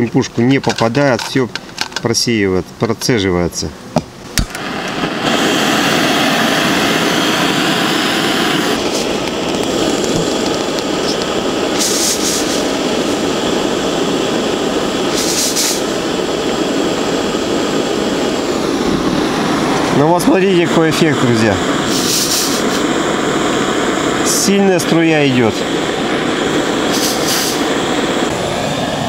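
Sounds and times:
jet-like burner noise: 0.0s - 29.0s
short high hisses: 11.0s - 13.3s, 15.0s - 16.1s, 21.6s - 23.0s, 26.3s - 28.3s.

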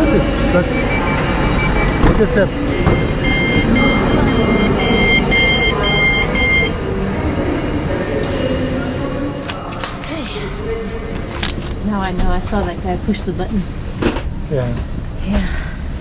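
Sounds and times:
two-tone door beeps: 0.5s - 6.8s.

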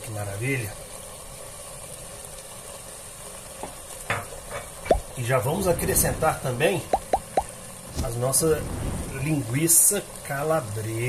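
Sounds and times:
vegetables sizzling in a pot: 0.0s - 11.0s.

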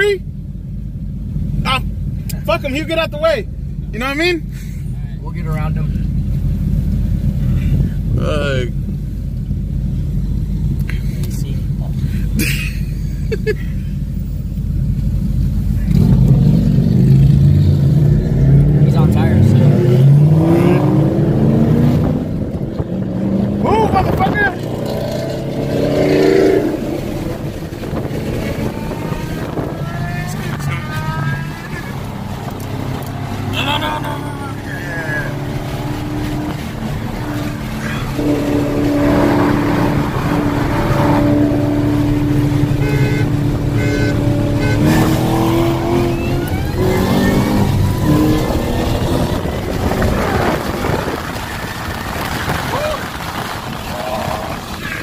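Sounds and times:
car engine accelerating from inside: 14.2s - 55.0s.

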